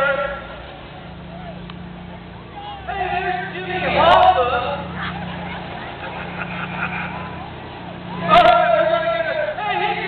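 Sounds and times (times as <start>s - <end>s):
crowd noise: 0.0s - 10.0s
engine idling: 0.0s - 10.0s.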